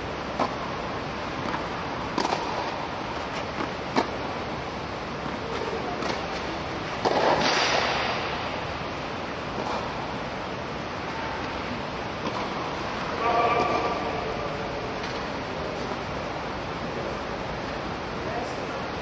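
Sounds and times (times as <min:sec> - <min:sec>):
racket hitting tennis ball: 0:00.3 - 0:00.6, 0:01.4 - 0:04.3, 0:05.2 - 0:08.4, 0:09.5 - 0:10.0, 0:12.2 - 0:14.1.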